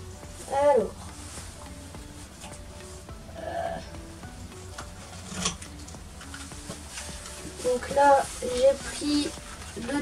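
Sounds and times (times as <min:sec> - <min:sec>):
light background music: 0:00.0 - 0:10.0
brush strokes on pony's coat: 0:00.1 - 0:03.1, 0:06.7 - 0:10.0.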